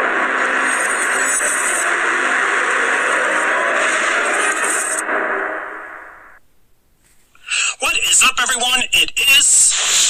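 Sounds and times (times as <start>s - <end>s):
loud dense noisy intro sound: 0.0s - 6.4s.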